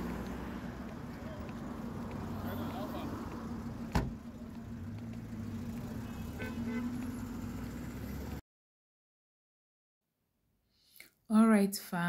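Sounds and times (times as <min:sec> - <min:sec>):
low hum of vehicles: 0:00.0 - 0:08.4.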